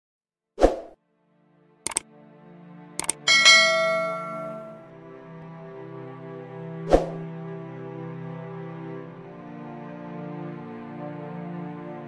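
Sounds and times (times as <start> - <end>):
soft background music: 1.0 - 12.0
mouse clicks: 3.0 - 3.2
bell-like ding: 3.0 - 4.8.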